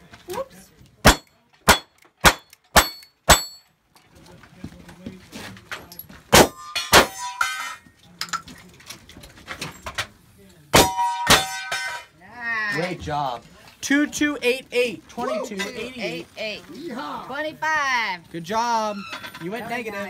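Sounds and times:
gunshots: 1.1s - 3.6s, 6.3s - 7.2s, 10.8s - 11.6s
steel target ringing: 1.1s - 3.7s, 10.8s - 12.1s.

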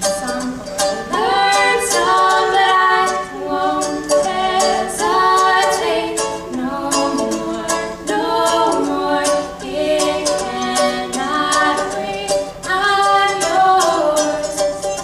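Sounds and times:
two women singing: 0.0s - 15.0s
ukulele strumming: 0.0s - 15.0s.

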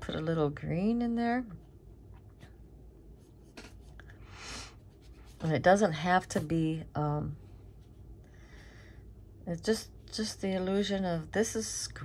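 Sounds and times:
brush strokes on paper: 4.8s - 6.7s.

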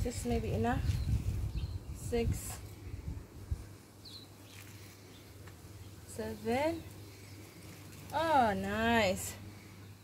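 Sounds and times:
bird chirp: 0.8s - 2.2s, 4.0s - 8.2s.

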